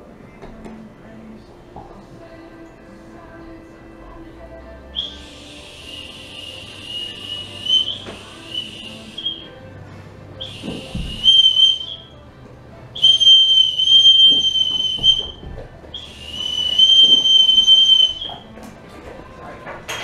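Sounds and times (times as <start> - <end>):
dog whistle blasts: 5.0 - 9.5, 10.4 - 12.1, 13.0 - 15.4, 16.0 - 18.4.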